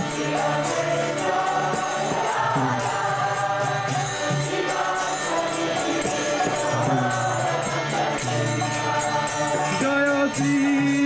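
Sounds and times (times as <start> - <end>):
harmonium: 0.0 - 11.0
small hand cymbals beat: 0.0 - 11.0
voices chanting together: 0.0 - 11.0.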